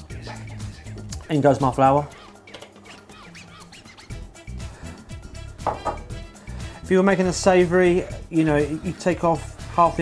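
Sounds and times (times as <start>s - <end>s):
background music: 0.0s - 10.0s
ceramic bowl knocking plastic bowl: 5.6s - 6.1s.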